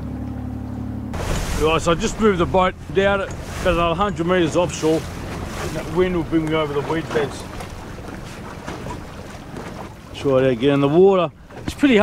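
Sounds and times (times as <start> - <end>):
water lapping against boat hull: 0.0 - 12.0
wind buffeting microphone: 1.2 - 12.0.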